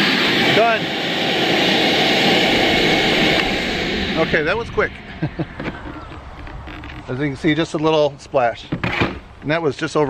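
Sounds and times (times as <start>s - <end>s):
man laughing: 4.9s - 6.3s.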